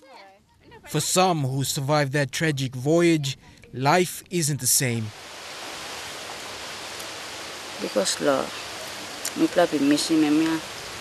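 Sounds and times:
steady outdoor background hiss: 0:00.0 - 0:11.0.

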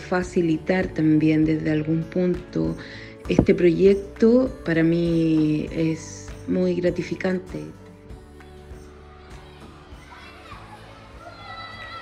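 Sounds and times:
music: 0:00.0 - 0:12.0
children chattering and calling out: 0:08.8 - 0:12.0.

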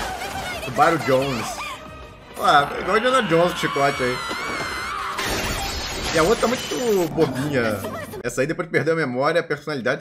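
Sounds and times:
shattering crash: 0:05.1 - 0:07.1.

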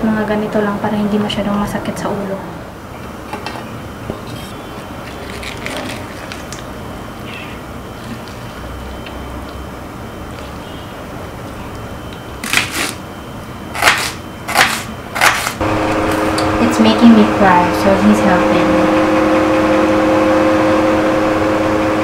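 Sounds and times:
knife cutting onion on wooden board: 0:13.8 - 0:15.6.

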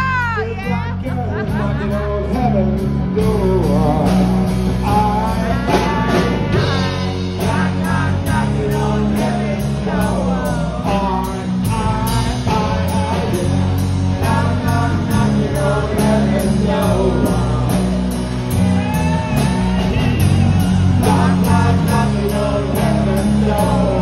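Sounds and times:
bass guitar: 0:00.0 - 0:24.0.

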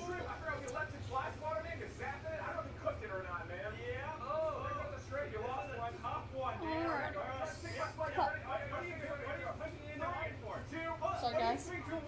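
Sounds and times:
voices talking on video: 0:00.0 - 0:12.0.

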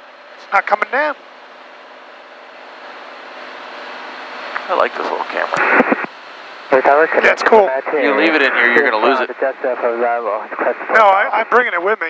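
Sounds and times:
aircraft engine and propeller: 0:00.0 - 0:09.6
air noise around cabin: 0:00.0 - 0:11.8.

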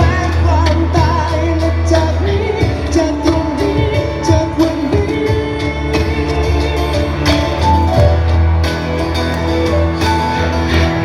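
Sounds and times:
man singing into microphone: 0:00.0 - 0:07.3
acoustic guitar: 0:00.0 - 0:11.0
low bass line: 0:00.0 - 0:11.0
steady drum beat: 0:00.0 - 0:11.0.

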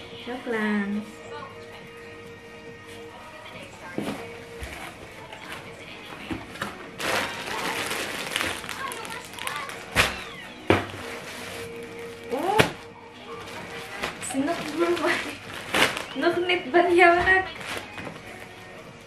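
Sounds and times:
background music: 0:00.0 - 0:19.0
plastic crinkling: 0:04.8 - 0:18.8.

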